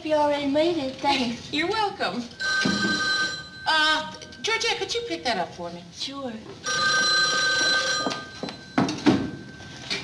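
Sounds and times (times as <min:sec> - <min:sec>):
telephone bell ringing: 0:02.3 - 0:04.6, 0:06.6 - 0:10.0.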